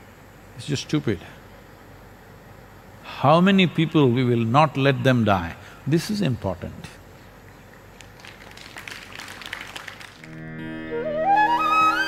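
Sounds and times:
faint scattered applause: 7.6s - 10.5s.

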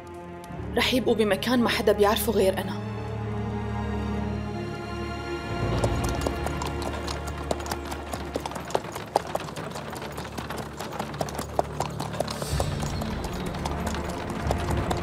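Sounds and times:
background music: 0.0s - 15.0s
hooves clip-clopping on dirt road: 5.5s - 15.0s.

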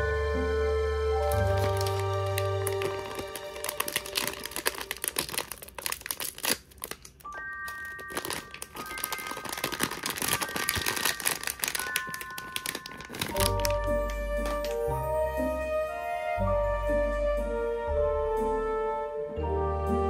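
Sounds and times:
background music: 0.0s - 6.6s, 7.2s - 20.0s
foil bag crinkling: 1.2s - 14.8s.

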